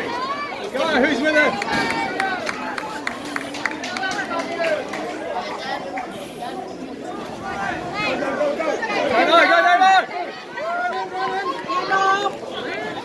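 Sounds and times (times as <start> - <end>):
people shouting and calling: 7.0 - 13.0.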